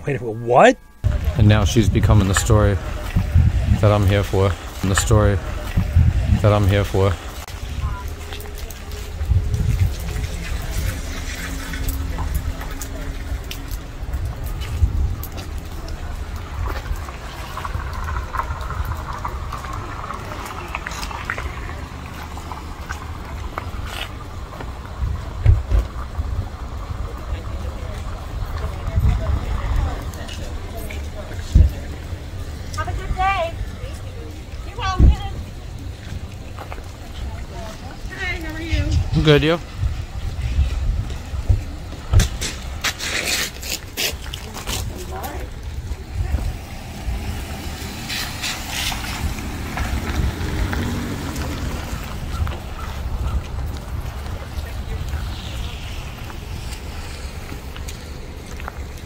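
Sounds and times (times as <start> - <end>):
wind buffeting microphone: 1.0 - 42.9, 44.4 - 59.0.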